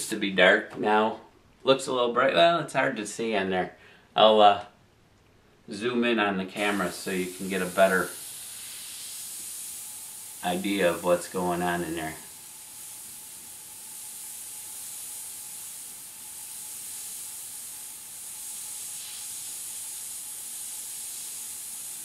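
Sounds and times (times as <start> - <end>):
airbrush hissing: 6.5 - 22.0.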